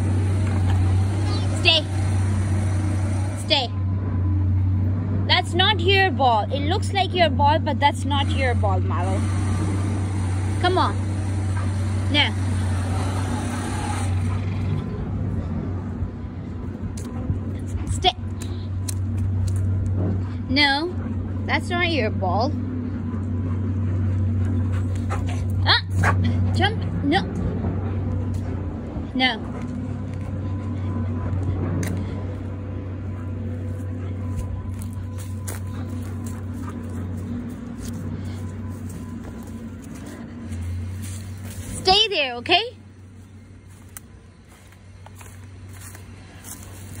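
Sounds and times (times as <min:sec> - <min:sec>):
faint steady whine: 0:00.0 - 0:47.0
low engine rumble: 0:00.0 - 0:47.0
low machine hum: 0:00.0 - 0:47.0.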